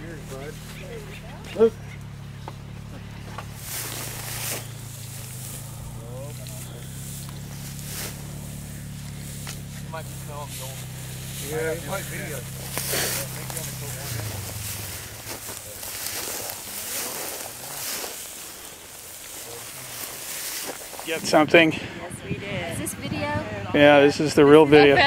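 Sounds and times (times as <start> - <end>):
low steady hum: 0.0 - 21.0
footsteps through dry grass: 0.0 - 21.7
faint distant voices: 0.0 - 25.0.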